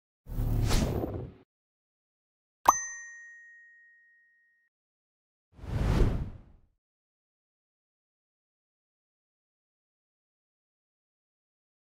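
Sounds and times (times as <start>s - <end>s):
bell-like chime ringing: 2.7s - 4.6s.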